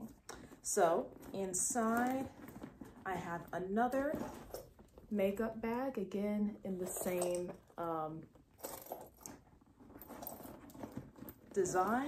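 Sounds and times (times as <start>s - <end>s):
fabric bag rustling: 0.0s - 5.4s, 6.7s - 12.0s.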